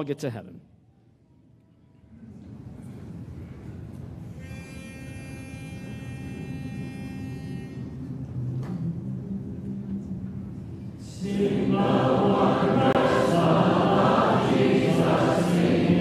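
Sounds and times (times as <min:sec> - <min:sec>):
congregation humming: 0:10.9 - 0:16.0.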